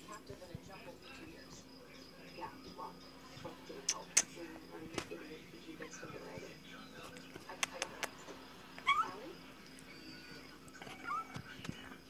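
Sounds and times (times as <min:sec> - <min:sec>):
faint tv dialogue: 0:00.0 - 0:12.0
sharp clicks: 0:07.4 - 0:08.2
cat meowing: 0:08.8 - 0:09.3, 0:09.9 - 0:11.5.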